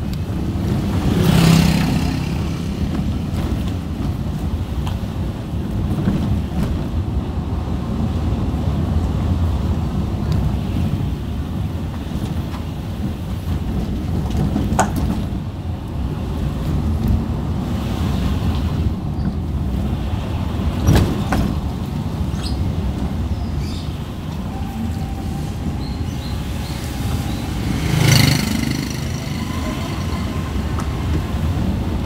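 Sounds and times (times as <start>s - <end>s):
car engine and road rumble: 0.0s - 32.0s
knocks and rattles: 12.0s - 15.5s.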